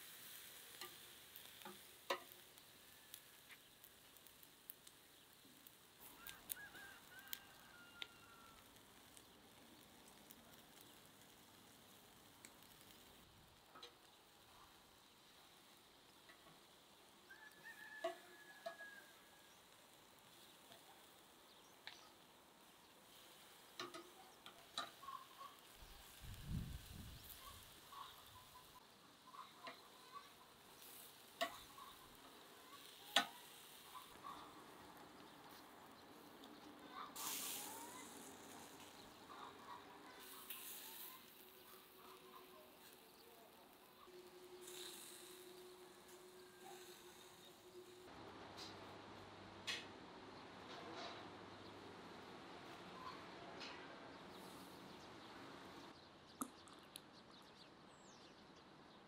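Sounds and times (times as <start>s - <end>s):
steaks sizzling on grill: 0.0s - 48.1s, 54.3s - 55.0s
tongs clicking on grill grate: 0.3s - 5.0s, 23.6s - 26.2s, 29.6s - 34.1s, 40.2s - 43.0s.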